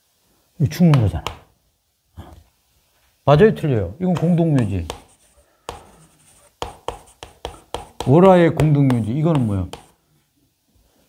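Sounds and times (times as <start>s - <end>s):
chalk strokes on blackboard: 4.0s - 10.0s.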